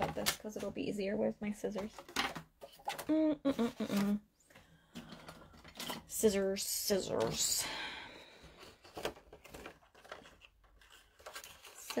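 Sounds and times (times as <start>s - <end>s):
paper rustling: 8.7s - 12.0s.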